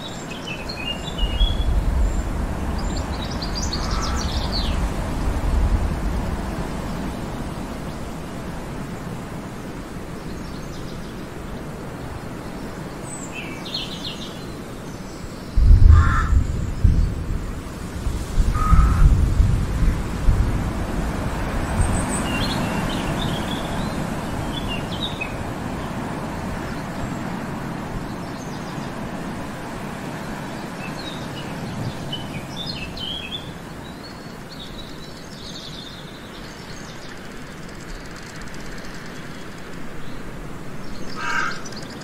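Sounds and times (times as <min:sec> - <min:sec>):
lower bird calls: 0:00.0 - 0:09.2, 0:12.6 - 0:17.3, 0:18.4 - 0:19.9, 0:21.5 - 0:26.0, 0:30.2 - 0:40.2, 0:40.8 - 0:42.0
small birds chirping: 0:00.0 - 0:19.4, 0:21.3 - 0:29.3, 0:30.0 - 0:42.0
steady rushing background: 0:00.7 - 0:12.4
low rumbles: 0:01.2 - 0:08.6.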